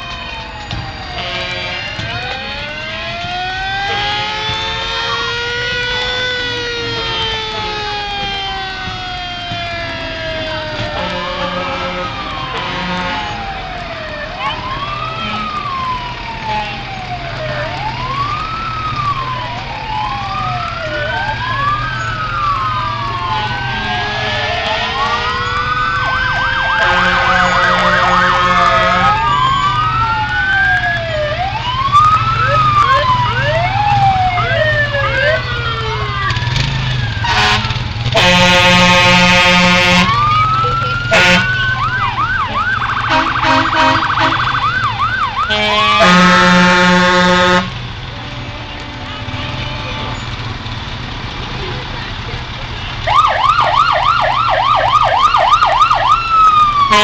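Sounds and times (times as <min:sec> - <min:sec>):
fire truck sirens wailing: 0:00.0 - 0:57.0
truck engine running: 0:00.0 - 0:57.0
air horn blasts: 0:01.2 - 0:02.0, 0:10.9 - 0:13.4, 0:23.3 - 0:25.4, 0:26.7 - 0:29.2, 0:37.2 - 0:40.2, 0:41.1 - 0:41.8, 0:42.5 - 0:44.6, 0:45.4 - 0:50.3.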